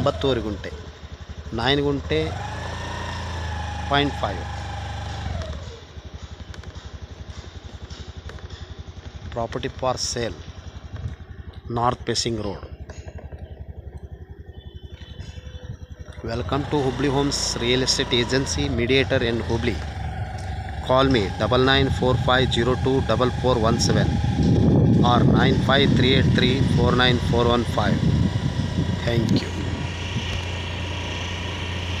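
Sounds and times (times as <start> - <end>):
vehicle engine running at low speed: 0.0 - 32.0
road and air noise hiss: 27.8 - 32.0.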